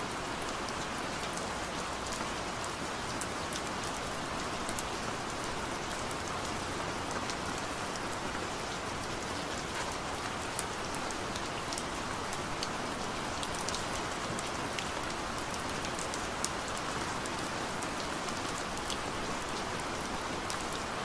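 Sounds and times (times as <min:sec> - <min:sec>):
steady rain: 0:00.0 - 0:21.0.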